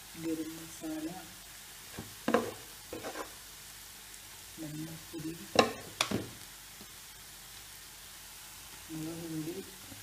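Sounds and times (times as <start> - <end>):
onions sizzling in a pan: 0.0 - 10.0.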